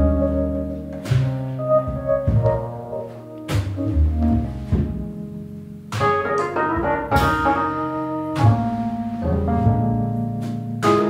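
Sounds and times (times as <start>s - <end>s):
small band playing live: 0.0s - 5.2s, 6.0s - 11.0s
keyboard: 0.0s - 11.0s
sharp drum hits: 5.9s - 7.8s.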